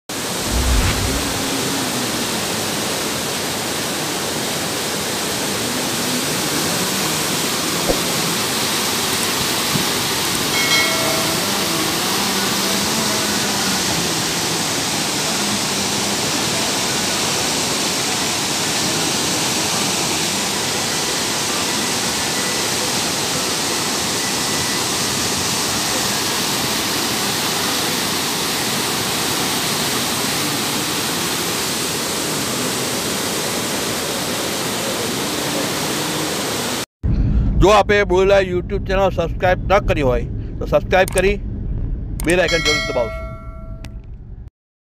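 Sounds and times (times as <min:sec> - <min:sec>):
floodwater rushing over rocks: 0:00.2 - 0:22.2.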